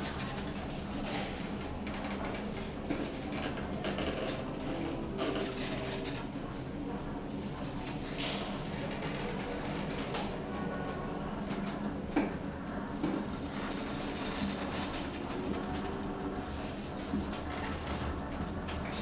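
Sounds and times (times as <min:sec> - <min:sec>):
elevator hum: 0:00.0 - 0:19.0.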